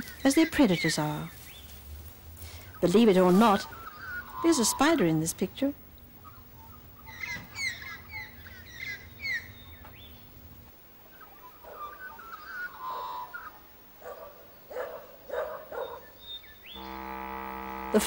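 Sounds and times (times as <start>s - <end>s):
birds chirping: 0.0s - 18.0s
sustained musical chord: 16.8s - 18.0s.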